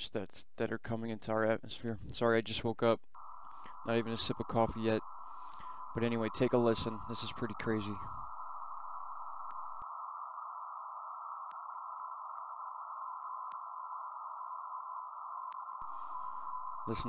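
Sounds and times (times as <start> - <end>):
faint beep-like tone: 3.2 - 9.8, 15.8 - 17.0
radio static hiss: 3.2 - 9.8, 15.8 - 17.0.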